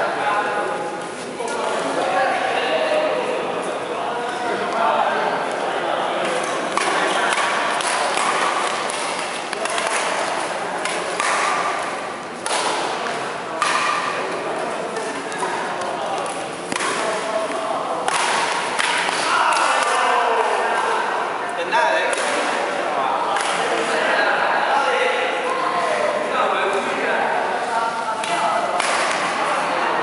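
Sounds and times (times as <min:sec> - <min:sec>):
racket hitting shuttlecock: 0:06.4 - 0:20.6, 0:22.1 - 0:22.6, 0:28.2 - 0:29.4.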